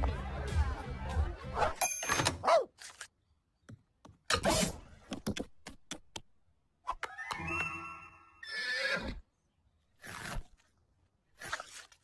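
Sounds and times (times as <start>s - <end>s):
cartoon horse whinnying: 7.0s - 9.2s.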